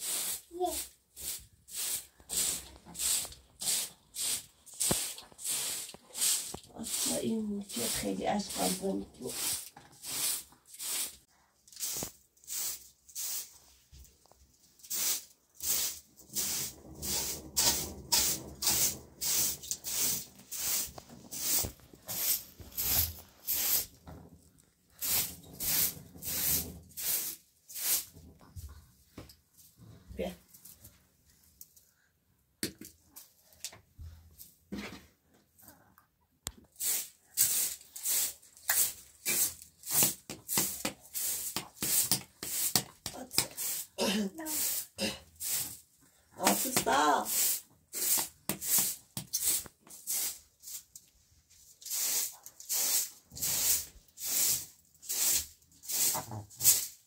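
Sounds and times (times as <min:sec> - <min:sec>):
broom sweeping tiled floor: 0:00.0 - 0:32.1, 0:36.5 - 0:57.0.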